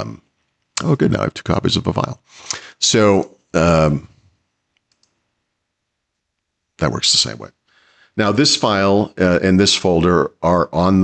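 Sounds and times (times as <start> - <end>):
faint computer mouse clicks: 4.7 - 5.2.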